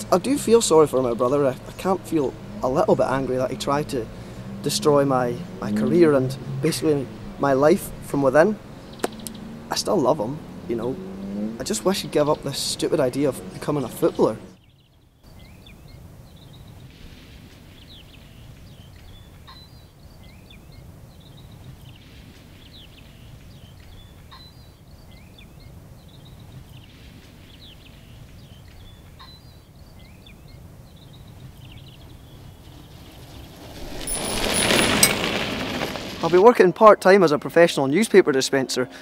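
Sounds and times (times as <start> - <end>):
low outdoor rumble: 0.0 - 14.6, 31.4 - 36.8
birds chirping: 0.0 - 16.9, 17.8 - 35.8
rushing noise of something passing: 32.5 - 36.4.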